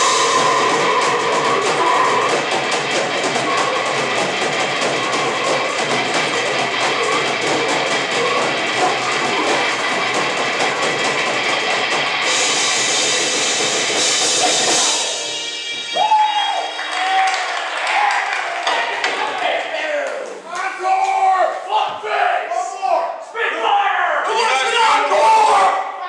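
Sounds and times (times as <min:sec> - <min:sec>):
fast dense drumming: 0:00.0 - 0:15.3
distorted guitar: 0:00.0 - 0:16.1.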